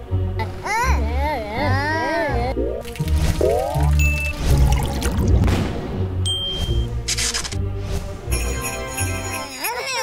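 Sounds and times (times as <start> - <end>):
cartoon pouring gurgle: 2.6 - 5.4.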